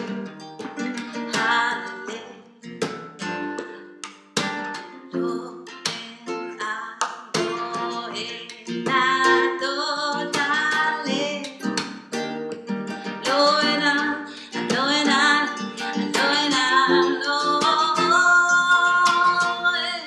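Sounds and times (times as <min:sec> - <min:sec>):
strummed acoustic guitar: 0:00.0 - 0:20.0
woman singing: 0:00.8 - 0:02.6, 0:04.8 - 0:11.9, 0:13.0 - 0:20.0.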